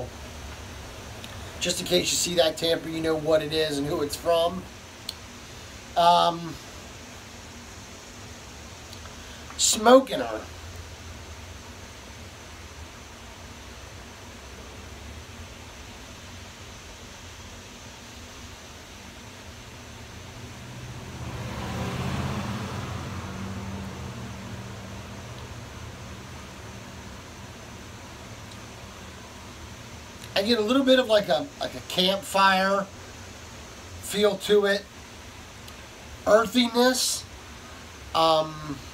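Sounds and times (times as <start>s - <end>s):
low background hum: 0.0s - 38.9s
motor vehicle passing by: 20.1s - 27.2s.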